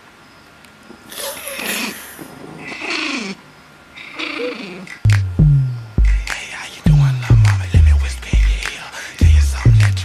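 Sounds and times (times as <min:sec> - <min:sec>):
small dog whining: 0:01.2 - 0:03.4, 0:04.0 - 0:05.0.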